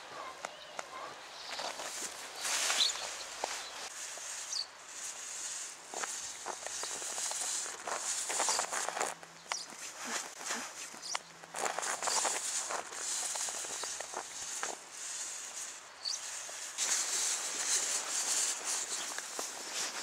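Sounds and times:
footsteps in snow: 0:01.3 - 0:20.0
snow shovel scraping snow: 0:01.6 - 0:20.0.

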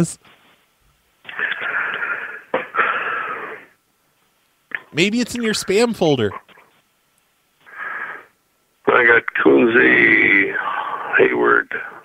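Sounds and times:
breath over telephone line: 0:01.2 - 0:03.8, 0:07.6 - 0:08.4
man's voice: 0:04.9 - 0:06.4.

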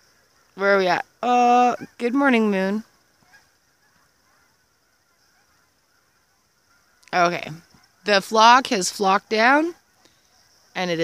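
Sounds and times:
distant geese honking: 0:00.0 - 0:11.0.

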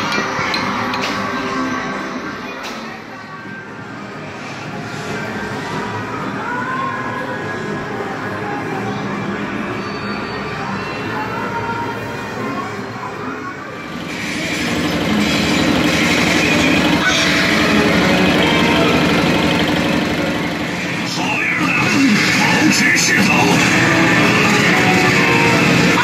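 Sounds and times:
people's voices: 0:00.0 - 0:26.0
electronic game machine sounds: 0:13.8 - 0:26.0.

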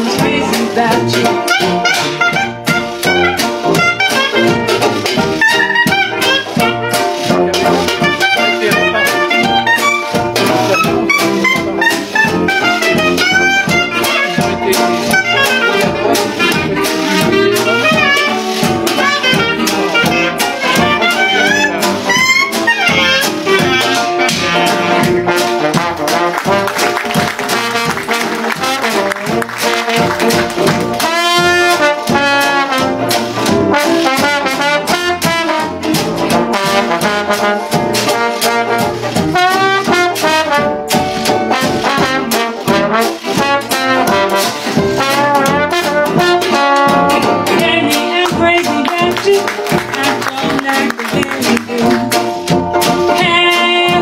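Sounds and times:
strummed banjo: 0:00.0 - 0:54.0
trombone: 0:00.0 - 0:54.0
clarinet: 0:00.2 - 0:54.0.

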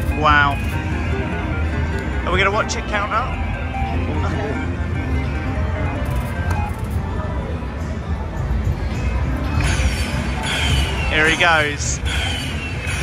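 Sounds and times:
casino background noise: 0:00.0 - 0:13.0.

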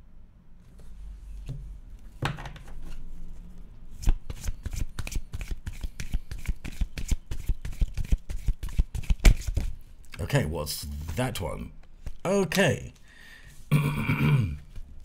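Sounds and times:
cards being shuffled: 0:04.0 - 0:09.8, 0:12.0 - 0:12.3.

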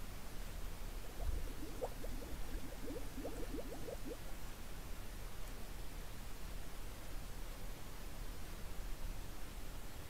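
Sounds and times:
bubbling gurgles underwater: 0:01.1 - 0:04.4.

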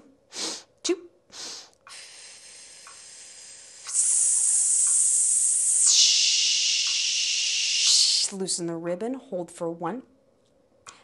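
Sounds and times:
woman exhaling forcefully: 0:01.4 - 0:08.3.

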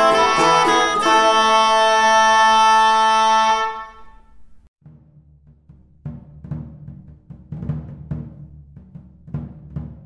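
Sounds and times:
wind instruments holding a chord: 0:00.0 - 0:04.4.

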